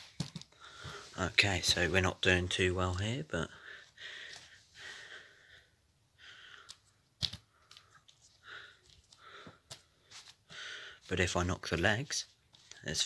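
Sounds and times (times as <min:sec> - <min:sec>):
faint breathing: 0:00.5 - 0:01.3, 0:03.4 - 0:11.1.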